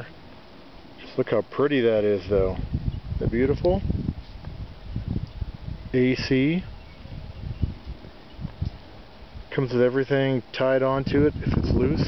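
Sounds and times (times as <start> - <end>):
wind buffeting microphone: 1.9 - 9.7, 10.8 - 12.0.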